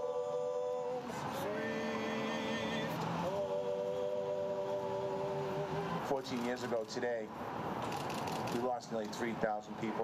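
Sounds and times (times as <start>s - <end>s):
voices singing sustained chord: 0.0s - 6.2s.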